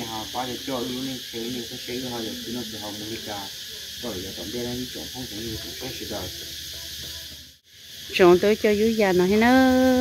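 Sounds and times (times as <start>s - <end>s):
high-pitched hiss: 0.0s - 10.0s.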